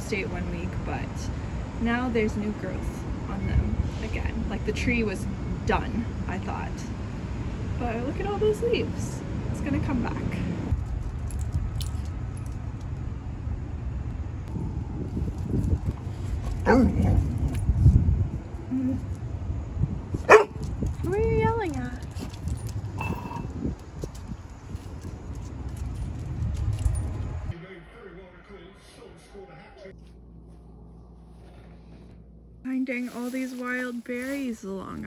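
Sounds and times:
low rumble of distant traffic: 0:00.0 - 0:35.0
dog collar tags jingling: 0:10.8 - 0:12.9, 0:20.3 - 0:27.4.

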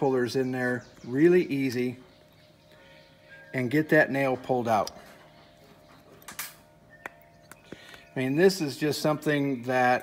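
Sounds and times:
metal tools clicking together: 0:06.2 - 0:08.1.

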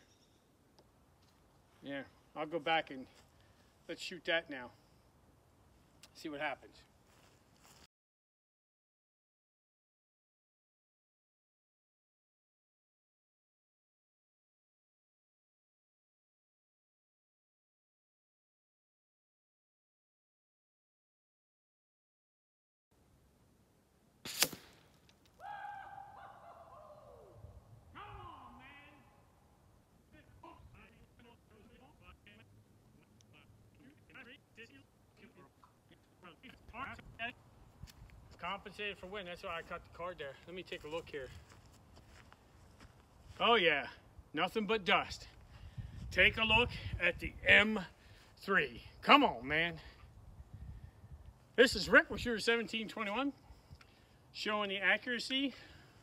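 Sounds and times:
air rifle shot crack: 0:24.2 - 0:25.1.

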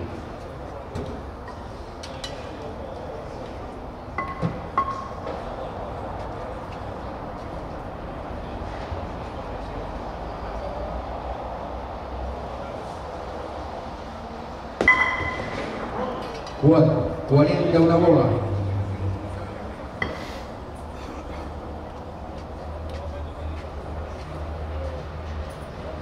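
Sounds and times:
low bowling hall background noise: 0:00.0 - 0:26.0.

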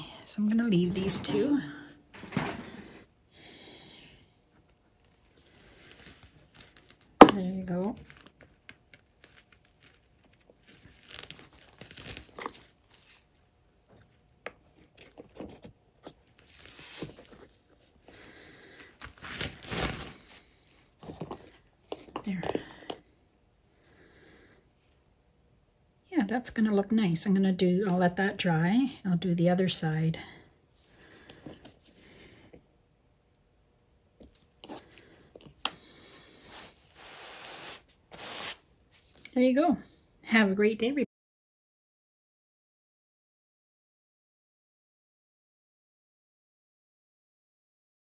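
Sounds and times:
crinkling and rustling: 0:04.6 - 0:23.0.

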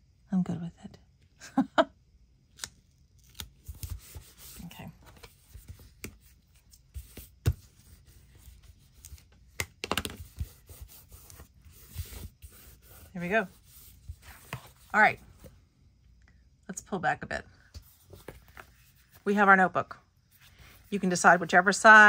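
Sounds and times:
paper rustling: 0:17.8 - 0:19.2.

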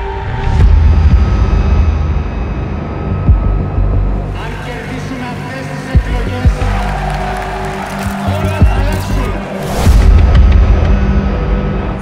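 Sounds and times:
ominous low drone score: 0:00.0 - 0:06.7
large crowd noise: 0:05.4 - 0:10.2.

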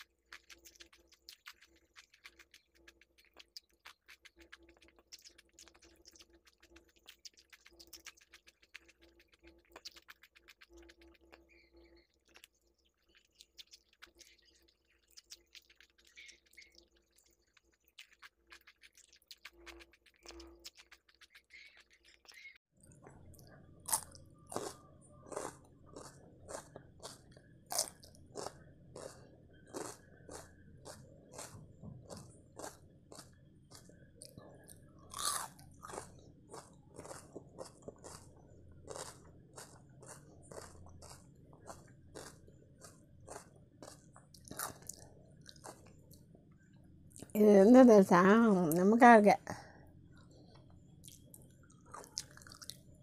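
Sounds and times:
person chewing food: 0:00.0 - 0:46.3, 0:50.2 - 0:53.0.

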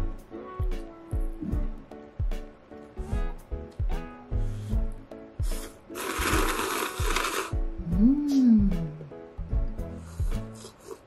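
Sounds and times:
person slurping noodles: 0:05.4 - 0:07.6, 0:10.1 - 0:11.0.

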